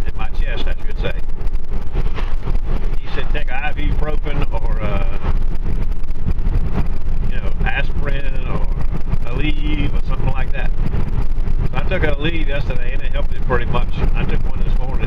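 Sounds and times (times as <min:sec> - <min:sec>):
car engine and tyres rumbling: 0:00.0 - 0:15.0.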